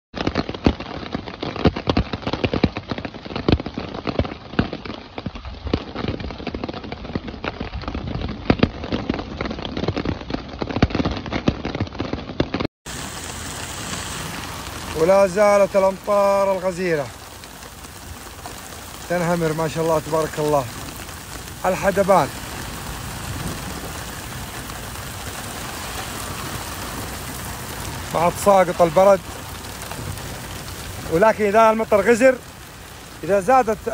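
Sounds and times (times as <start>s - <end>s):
hail and rain on umbrella: 0.2s - 33.9s
steady hiss of rain: 12.9s - 33.9s.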